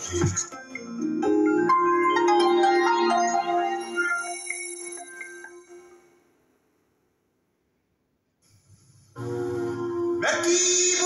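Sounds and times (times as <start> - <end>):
chiming music jingle: 1.6 - 6.0.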